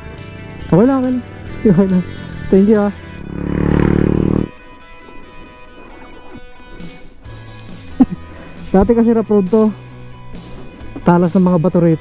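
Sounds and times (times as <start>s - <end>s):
motorcycle engine passing: 0.0s - 4.8s
background music: 0.0s - 12.0s.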